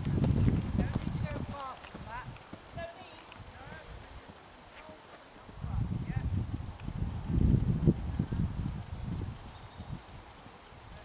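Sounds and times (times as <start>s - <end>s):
horse hoofbeats on grass: 0.0s - 5.6s.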